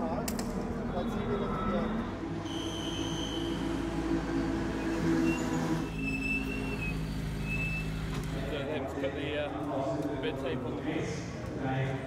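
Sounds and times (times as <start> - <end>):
high engine whines: 0.7 - 8.7.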